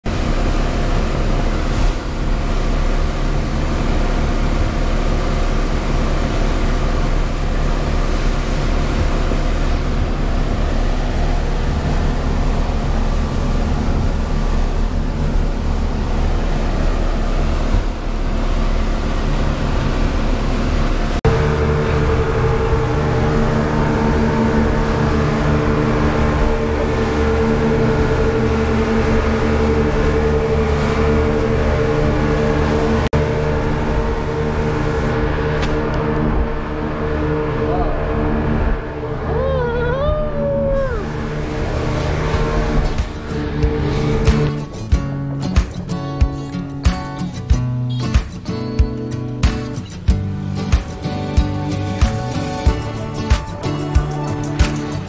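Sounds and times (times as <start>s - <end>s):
outboard motors running: 0.0s - 55.0s
steady engine hum: 0.0s - 55.0s
wind: 0.0s - 55.0s
rushing water: 0.1s - 39.4s, 40.8s - 47.5s.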